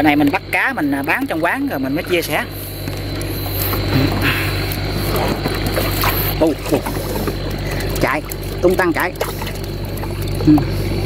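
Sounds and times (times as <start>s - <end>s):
steady low hum: 0.0s - 11.0s
fish flopping in plastic basin: 3.0s - 10.8s.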